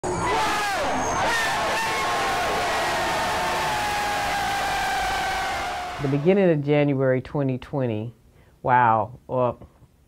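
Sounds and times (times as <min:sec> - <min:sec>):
crowd cheering and shouting: 0:00.0 - 0:06.3.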